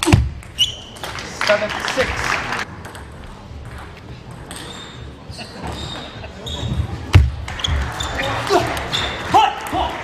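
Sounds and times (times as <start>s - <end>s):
shoes squeaking on floor: 0.5s - 1.0s, 4.5s - 8.3s.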